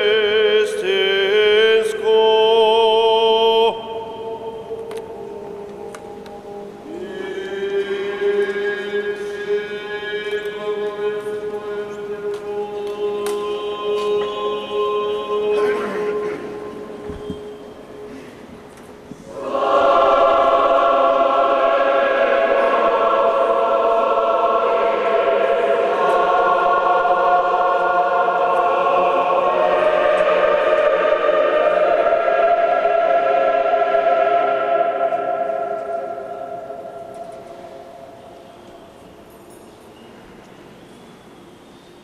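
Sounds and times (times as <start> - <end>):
church choir chanting: 0.0 - 18.2, 19.2 - 39.3.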